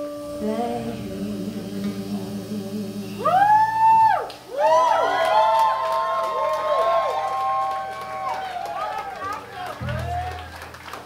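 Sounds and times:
gliding pitched tones: 0.0 - 4.2
low steady drone: 0.0 - 4.2.

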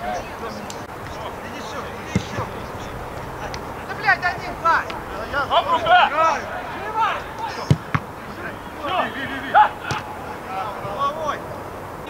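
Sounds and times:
players shouting: 0.0 - 12.0
football kicked with a thud: 2.1 - 2.5, 7.6 - 8.1.

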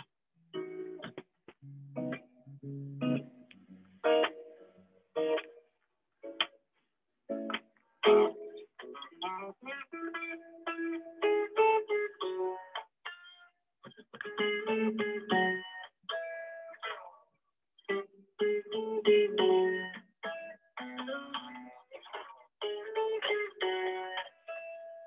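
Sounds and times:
guitar chords and plucked notes: 0.0 - 25.0.

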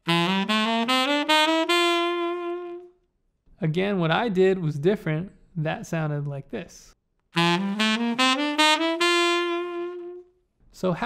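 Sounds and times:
tenor saxophone scale run: 0.0 - 3.0, 7.4 - 10.3.

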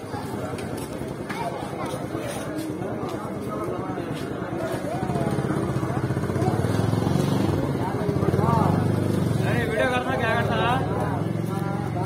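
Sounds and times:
people talking: 0.0 - 12.0
engine running: 5.0 - 12.0.

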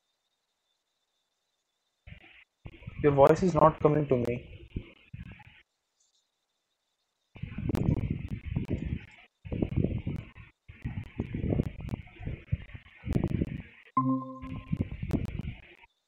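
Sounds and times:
crackly video call noise: 1.6 - 16.0
electronic join tone: 14.0 - 15.0.

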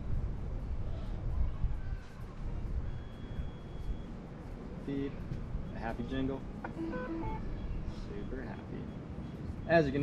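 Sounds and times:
low outdoor rumble: 0.0 - 10.0
thin high steady beep: 2.7 - 4.3, 4.9 - 10.0.

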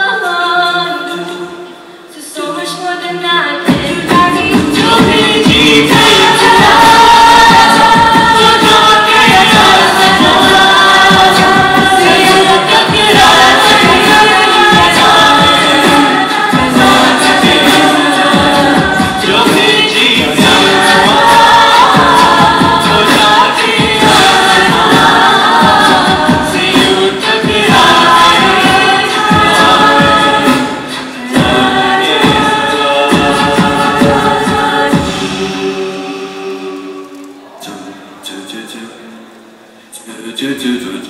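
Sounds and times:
women singing in harmony: 0.0 - 37.4
rhythmic pulse: 3.7 - 37.2.

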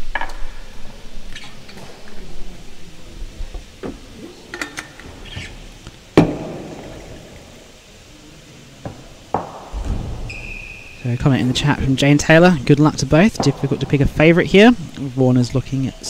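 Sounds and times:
sharp knocks echoing indoors: 6.2 - 7.2, 8.8 - 10.3.

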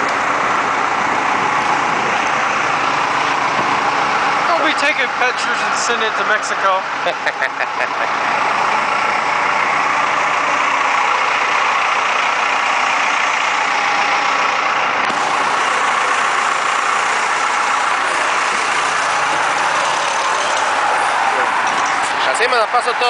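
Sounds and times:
diesel engine running: 0.0 - 23.0.

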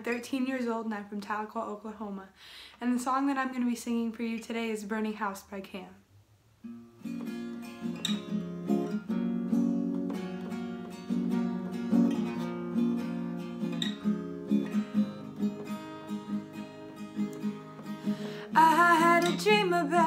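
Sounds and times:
acoustic guitar strumming: 6.6 - 20.0.

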